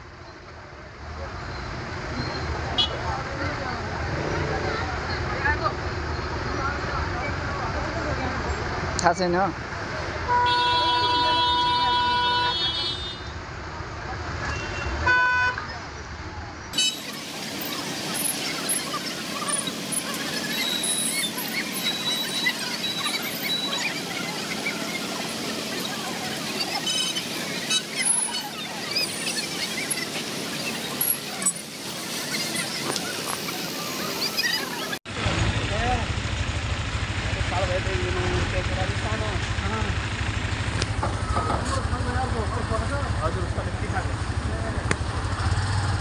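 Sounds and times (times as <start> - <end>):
hubbub of many voices: 0.0 - 12.4, 13.3 - 36.1, 40.6 - 46.0
motorcycle engines: 0.0 - 46.0
vehicle horn: 10.3 - 13.3, 14.5 - 15.6, 16.8 - 17.3.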